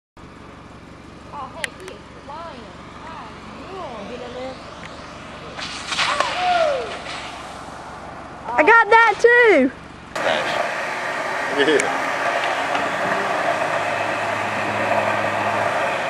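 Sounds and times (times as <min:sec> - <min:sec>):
steady low hum: 0:00.2 - 0:16.0
rushing noise: 0:03.0 - 0:09.3, 0:10.2 - 0:16.0
long falling shout: 0:06.0 - 0:07.0.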